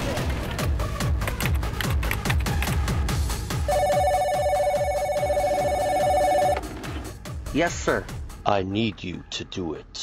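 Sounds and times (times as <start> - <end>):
desk telephone ringing: 3.7 - 6.7.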